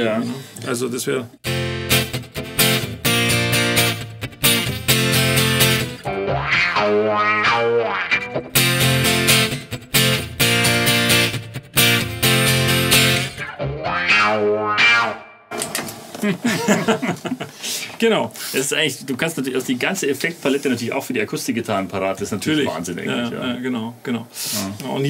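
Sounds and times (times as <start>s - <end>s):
strummed guitar chords: 1.4s - 15.6s
gliding guitar tones: 1.4s - 15.7s.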